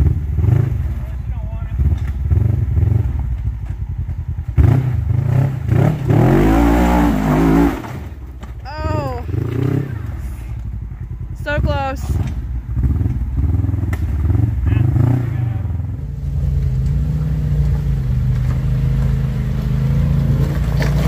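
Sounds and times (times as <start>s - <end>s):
engine running at low revs: 0.0s - 21.0s
off-road engine revving: 0.0s - 21.0s.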